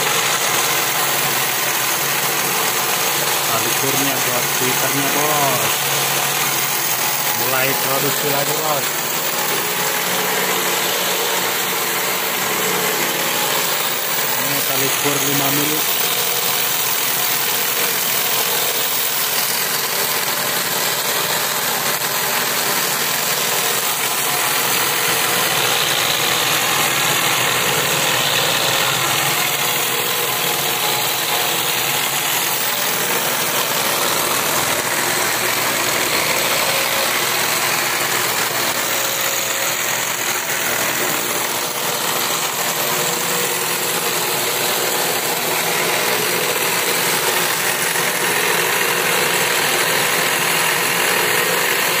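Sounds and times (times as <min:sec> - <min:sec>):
cord-making machine whirring and rattling: 0:00.0 - 0:52.0.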